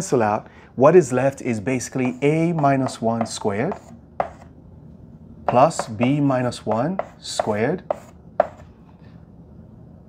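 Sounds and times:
chalk tapping chalkboard: 1.9 - 4.5, 5.5 - 8.7.

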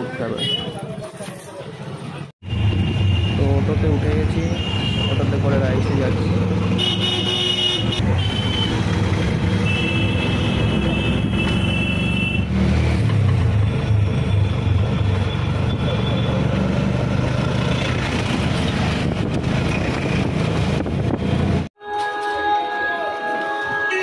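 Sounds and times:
street traffic: 0.0 - 24.0
auto-rickshaw engine running: 7.8 - 21.7.

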